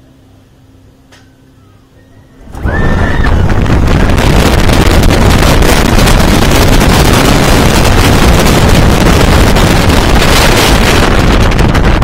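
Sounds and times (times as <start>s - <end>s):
faint steady hum: 0.0s - 12.0s
roller coaster launch rushing: 2.4s - 12.0s.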